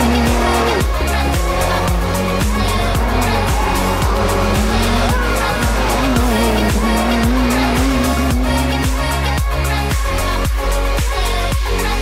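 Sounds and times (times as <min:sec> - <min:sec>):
race car engine pulling hard: 0:00.0 - 0:10.7
electronic music with steady beat: 0:00.0 - 0:12.0.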